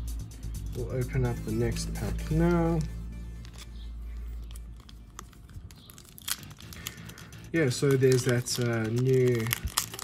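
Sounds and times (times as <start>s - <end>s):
foil wrapper crinkling: 3.4s - 10.0s.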